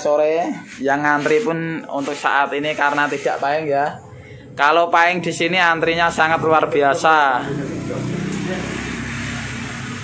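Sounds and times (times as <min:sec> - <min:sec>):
vehicle engine humming: 0:04.0 - 0:10.0.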